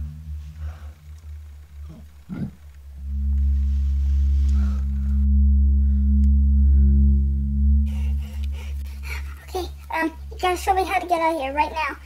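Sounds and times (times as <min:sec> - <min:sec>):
deep ominous drone: 0:00.0 - 0:12.0.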